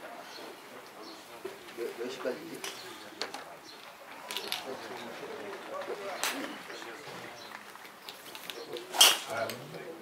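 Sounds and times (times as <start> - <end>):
faint murmur of voices: 0.0 - 10.0.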